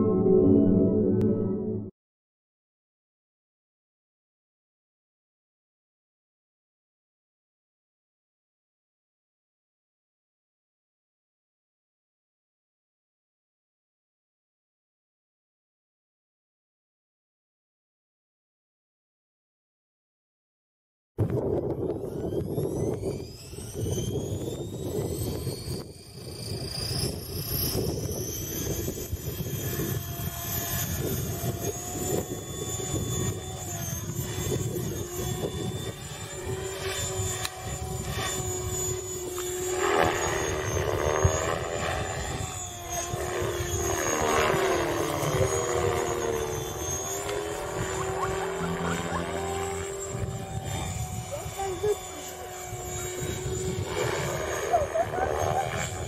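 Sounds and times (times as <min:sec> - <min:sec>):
rc helicopter whine: 0:21.2 - 0:56.0.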